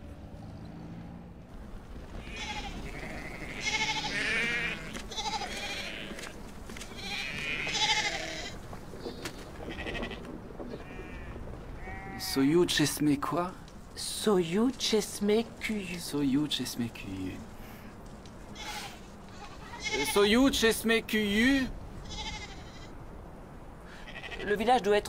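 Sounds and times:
low vehicle engine rumble: 0.0 - 12.2
goats bleating: 2.2 - 8.6, 9.3 - 12.4, 18.6 - 20.3, 22.0 - 22.9, 24.0 - 24.6.

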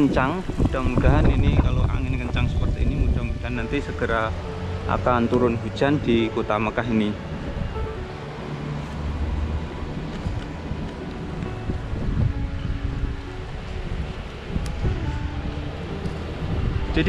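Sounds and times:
faint held musical notes: 0.0 - 17.0
wind gusting on microphone: 0.0 - 17.0.

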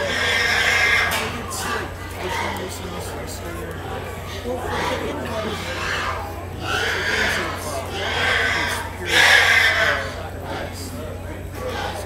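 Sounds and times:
murmur of crowd chatter: 0.0 - 12.0
pigs squealing: 0.0 - 12.0.

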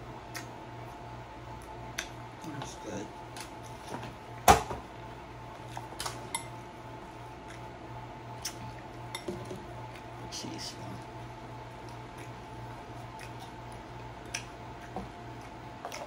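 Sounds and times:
chewing crunchy taco: 5.3 - 16.0.

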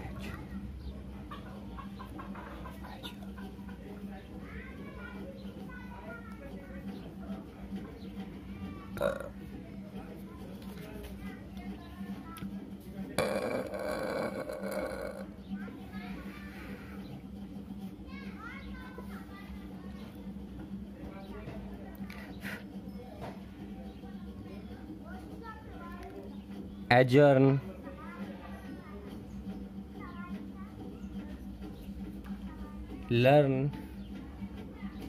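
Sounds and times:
children's voices: 4.2 - 7.0, 14.2 - 17.2, 17.8 - 20.4, 23.2 - 26.6, 27.8 - 33.1
animal calls: 13.2 - 15.4.

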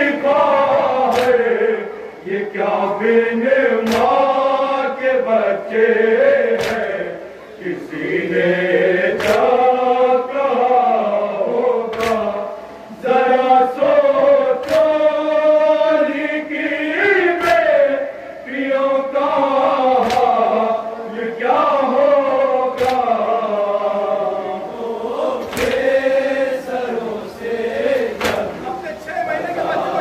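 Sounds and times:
men chanting lament over loudspeakers: 0.0 - 30.0
sharp slaps: 1.0 - 1.6, 3.8 - 4.4, 6.5 - 7.0, 9.1 - 9.6, 11.9 - 12.5, 14.6 - 15.1, 17.3 - 17.8, 19.9 - 20.5, 22.7 - 23.2, 25.4 - 26.1, 28.0 - 28.6.

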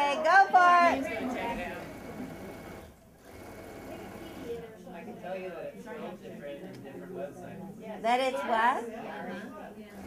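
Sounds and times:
electric sewing machine running: 1.1 - 4.6.

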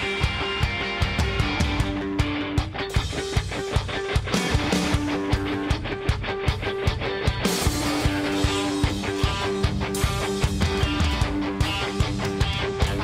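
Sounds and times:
electric guitar riff: 0.0 - 13.0
steady drum beat: 0.0 - 13.0.

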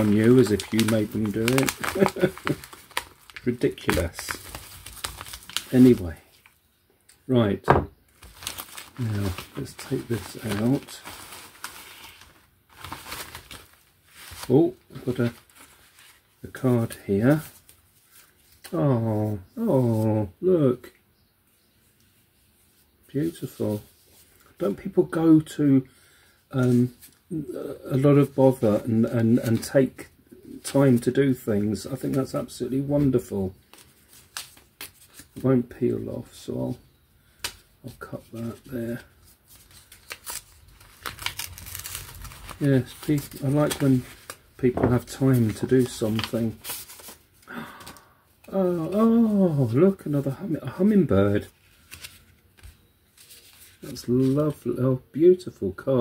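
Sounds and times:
knife cutting paper envelope: 0.0 - 6.1, 39.6 - 47.2
plastic bags rustling: 0.0 - 6.5, 8.1 - 16.3, 38.4 - 49.2.

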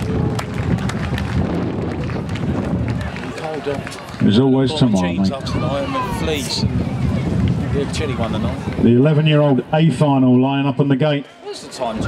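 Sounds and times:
spectators applauding: 0.0 - 6.3
wind buffeting microphone: 0.0 - 10.2.

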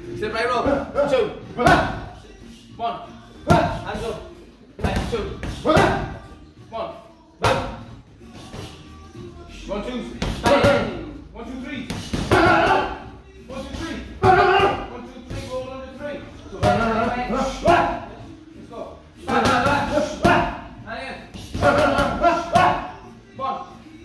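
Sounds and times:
background music: 0.0 - 24.0.

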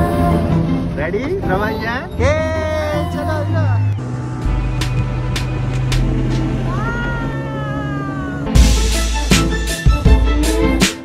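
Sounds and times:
outboard motor drone: 0.0 - 10.8.

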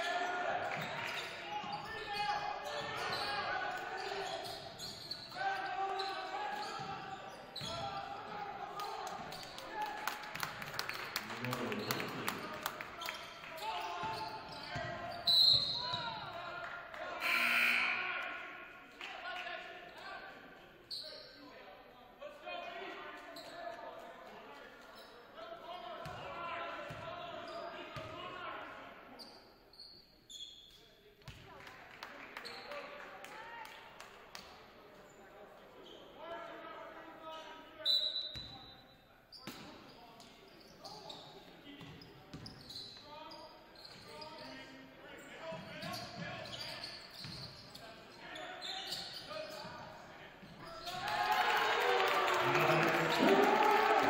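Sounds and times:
voices echoing in a hall: 0.0 - 54.0.

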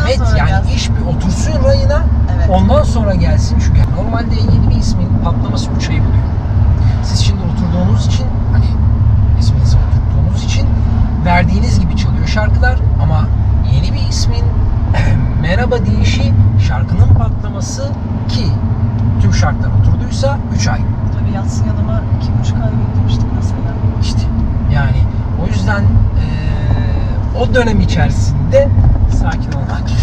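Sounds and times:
car engine and tyre rumble: 0.0 - 30.0
two people talking: 0.0 - 30.0.

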